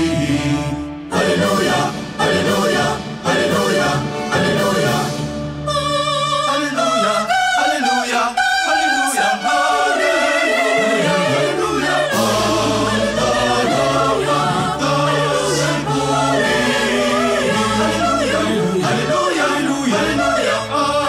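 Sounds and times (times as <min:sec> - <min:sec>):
choir singing: 0:00.0 - 0:21.0.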